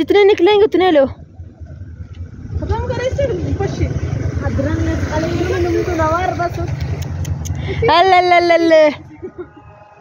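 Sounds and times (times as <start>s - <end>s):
steady low rumble: 0.0s - 9.7s.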